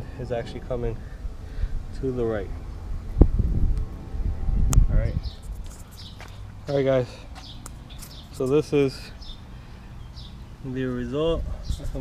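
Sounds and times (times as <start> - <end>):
wind buffeting microphone: 0.5 - 6.5, 11.2 - 12.0.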